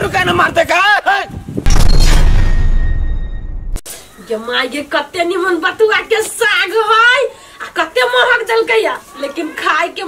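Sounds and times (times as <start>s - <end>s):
deep cinematic boom: 1.7s - 3.8s
low rumble: 1.7s - 3.8s
faint high ringing tones: 1.7s - 4.2s.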